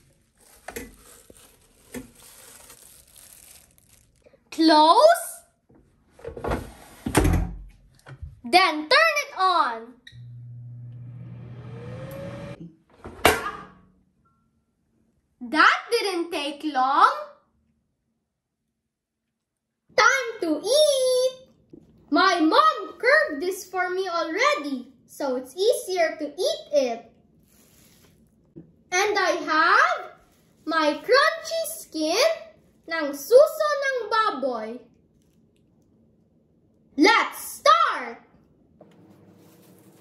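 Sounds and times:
air fryer motor hum: 10.2 - 12.6
fan whine: 10.2 - 12.6.

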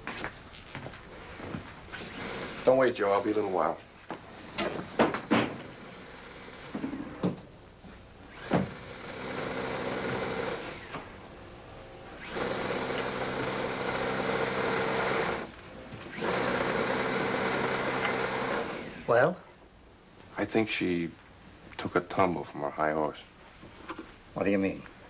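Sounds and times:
electric sewing machine running: 8.3 - 10.9, 12.2 - 15.5, 16.1 - 19.1.

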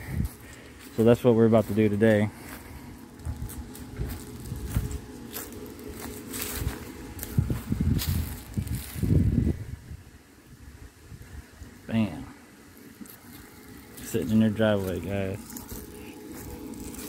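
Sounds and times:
footsteps crunching over dry leaves: 0.0 - 9.8, 12.7 - 17.0.

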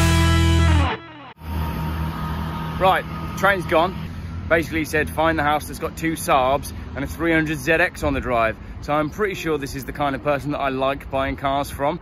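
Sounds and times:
low engine hum: 0.0 - 9.0
man talking: 2.8 - 12.0.

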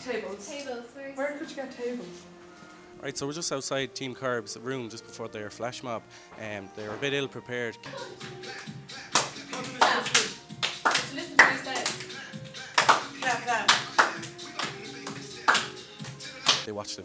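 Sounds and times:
music: 0.0 - 17.0
group clapping hands: 8.4 - 16.7.

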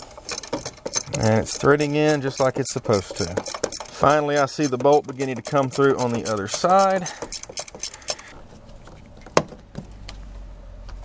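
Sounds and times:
wrench clicking on metal: 0.0 - 8.3.

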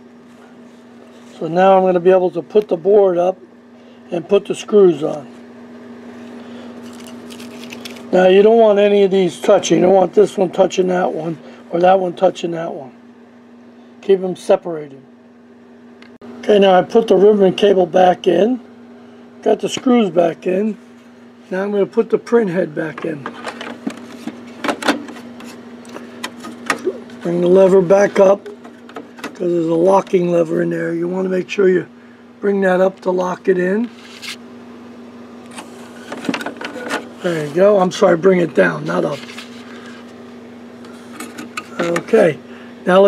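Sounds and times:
steady low hum: 0.0 - 43.0
handling rustles and clicks: 6.8 - 8.1.

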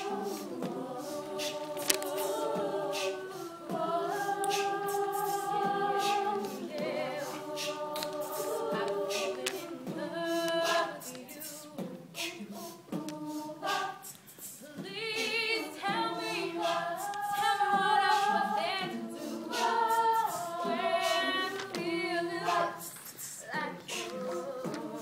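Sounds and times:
female choir singing chords: 0.0 - 25.0
vocal percussion beat: 0.0 - 25.0.

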